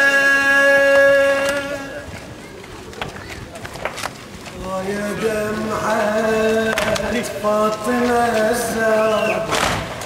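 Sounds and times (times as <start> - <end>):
man chanting through microphone: 0.0 - 2.1, 4.6 - 9.6
crowd background noise: 0.0 - 10.0.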